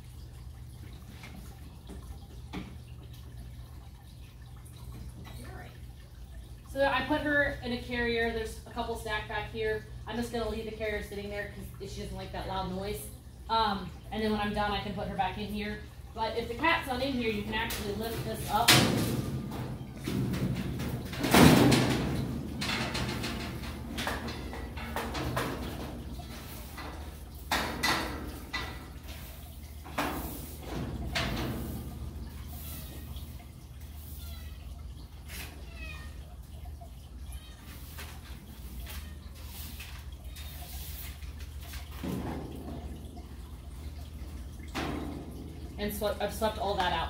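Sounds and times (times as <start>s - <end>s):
metal cage clank: 18.5s - 29.0s
hand brush sweeping: 37.8s - 41.8s.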